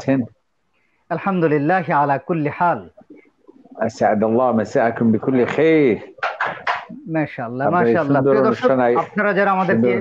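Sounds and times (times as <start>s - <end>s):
man speaking: 0.0s - 0.3s, 1.1s - 10.0s.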